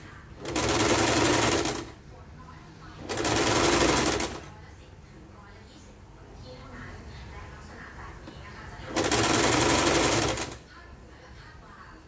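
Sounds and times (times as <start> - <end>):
sewing machine stitching fabric: 0.0 - 2.0, 3.0 - 4.5, 8.9 - 10.6.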